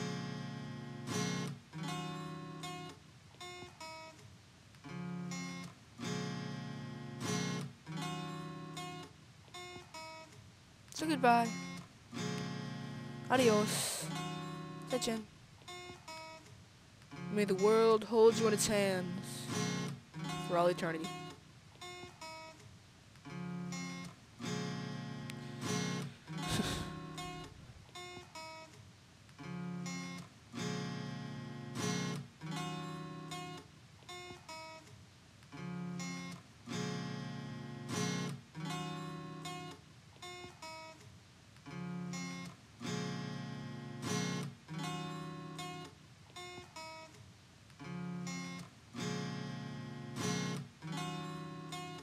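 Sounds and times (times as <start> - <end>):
acoustic guitar chords: 0.0 - 4.2, 4.8 - 10.4, 11.0 - 16.5, 17.1 - 22.6, 23.2 - 28.8, 29.4 - 34.9, 35.5 - 41.0, 41.7 - 47.2, 47.8 - 52.0.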